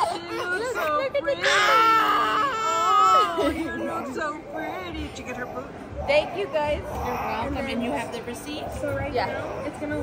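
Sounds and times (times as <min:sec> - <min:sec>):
baby crying: 0:00.0 - 0:03.6.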